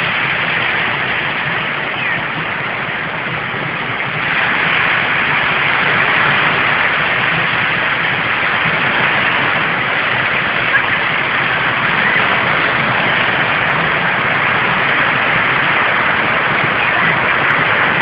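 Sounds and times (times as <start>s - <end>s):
surf: 0.0s - 18.0s
wind: 0.0s - 18.0s.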